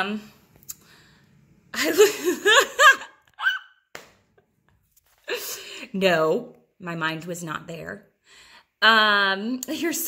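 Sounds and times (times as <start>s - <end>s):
woman giggling: 1.8s - 3.6s.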